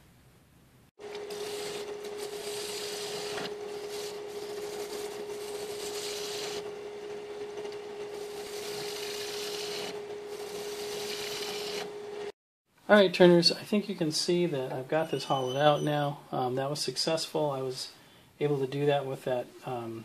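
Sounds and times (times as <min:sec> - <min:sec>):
wood lathe running: 0:01.0 - 0:12.3
tool scraping wood: 0:01.2 - 0:06.7, 0:07.5 - 0:11.9.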